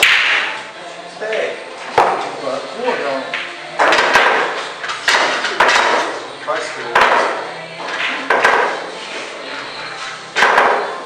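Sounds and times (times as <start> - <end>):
pool balls cracking: 0.0 - 9.0, 10.3 - 11.0.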